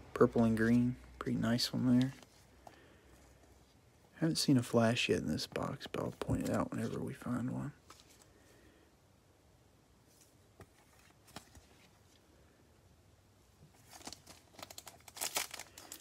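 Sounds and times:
foil wrapper crinkling: 13.8s - 16.0s
foil wrapper tearing: 13.9s - 16.0s.

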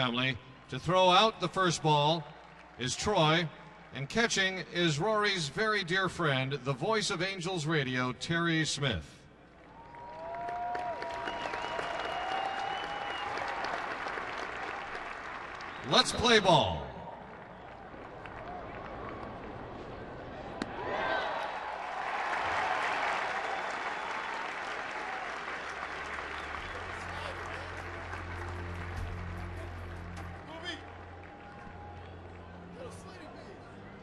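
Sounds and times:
crowd cheering and applauding: 9.6s - 19.8s, 20.8s - 33.5s.

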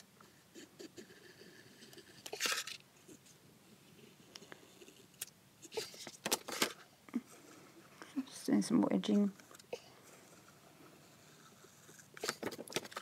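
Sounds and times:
paper page scraping and rustling: 11.3s - 13.0s.

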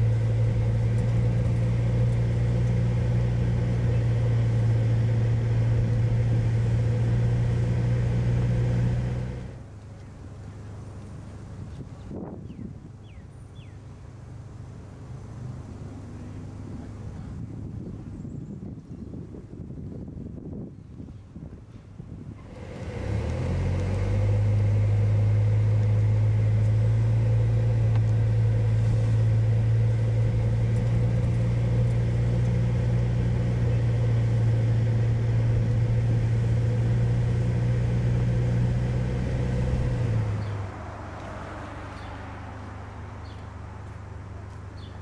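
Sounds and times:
car driving interior drone: 0.0s - 12.3s, 22.3s - 45.0s
outdoor background: 0.0s - 45.0s.

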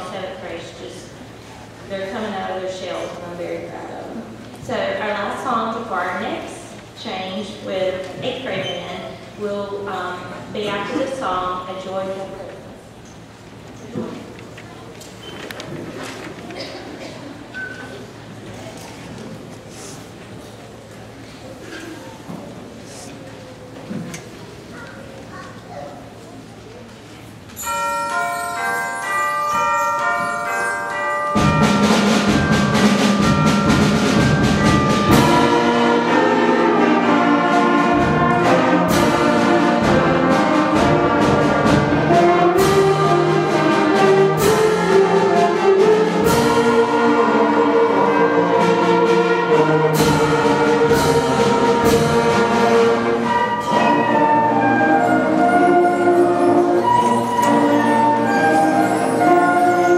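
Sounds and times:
percussion strikes: 27.5s - 59.9s
concert band playing: 27.6s - 59.9s
mallet bells notes: 27.6s - 59.9s.

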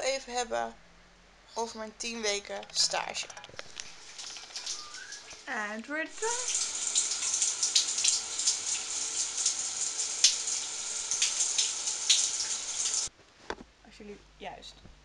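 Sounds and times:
shower water spraying: 3.9s - 5.5s, 6.1s - 13.1s.

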